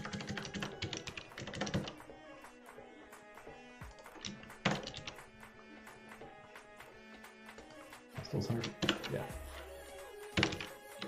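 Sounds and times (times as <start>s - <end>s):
computer keyboard keystrokes: 0.0s - 2.1s, 3.9s - 5.2s, 10.4s - 11.0s
quiet background music: 0.0s - 11.0s.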